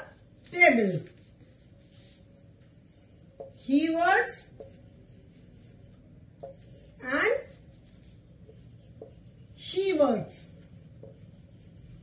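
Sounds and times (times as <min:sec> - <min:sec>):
woman speaking: 0:00.0 - 0:01.2, 0:03.6 - 0:04.5, 0:06.9 - 0:07.6, 0:09.6 - 0:10.6
marker pen writing on whiteboard: 0:00.0 - 0:12.0.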